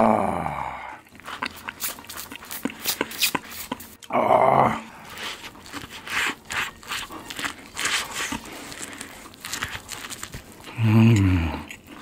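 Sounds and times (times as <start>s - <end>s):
growling vocal groan: 0.0s - 1.0s, 4.1s - 4.9s
chewing corn on the cob: 1.0s - 4.2s, 4.8s - 12.0s.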